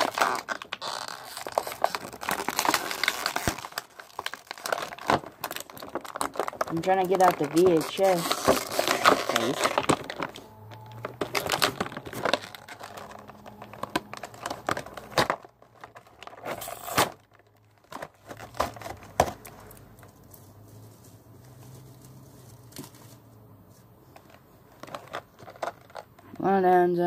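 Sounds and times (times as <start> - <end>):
packaging crinkling and tearing: 0.0 - 20.6, 24.2 - 26.2.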